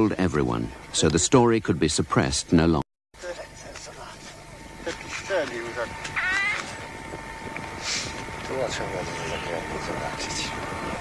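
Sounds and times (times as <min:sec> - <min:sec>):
indistinct voices talking: 0:03.2 - 0:11.0.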